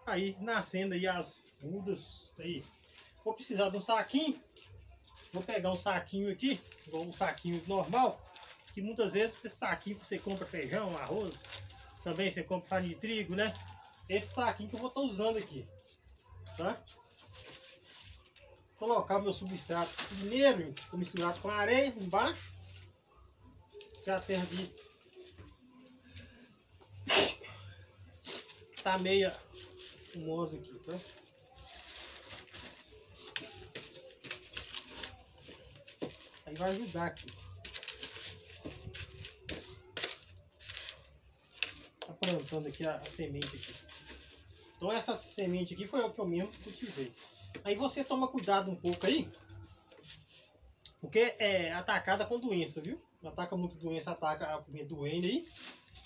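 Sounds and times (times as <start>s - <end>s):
plastic bag rustling: 1.3s - 50.6s, 55.0s - 56.0s.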